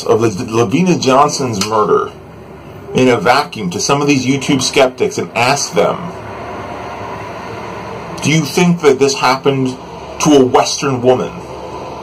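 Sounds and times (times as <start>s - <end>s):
steady background hiss: 0.0s - 12.0s.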